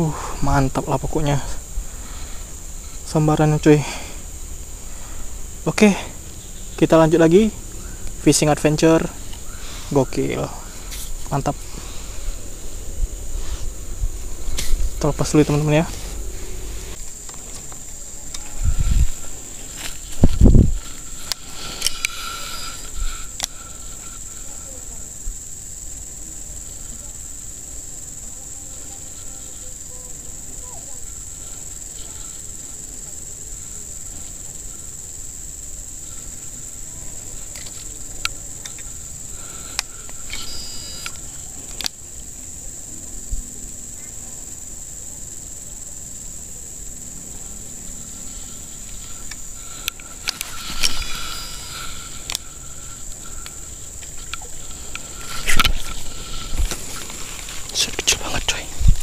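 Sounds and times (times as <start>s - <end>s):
insect chorus drone: 0.0s - 59.0s
low thumps: 10.5s - 21.1s.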